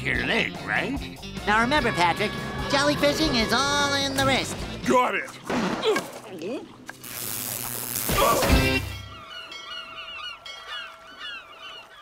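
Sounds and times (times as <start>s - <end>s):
gulls crying: 0.0s - 4.8s, 7.3s - 12.0s.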